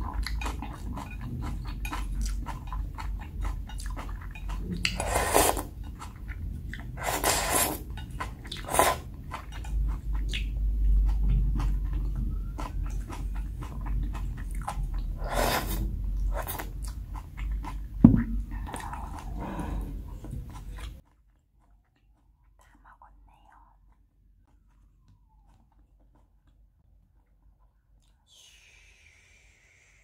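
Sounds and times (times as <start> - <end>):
wet chewing and mouth smacks: 0.0 - 28.3
noodle slurps: 4.9 - 5.8, 6.9 - 9.1, 15.2 - 16.8.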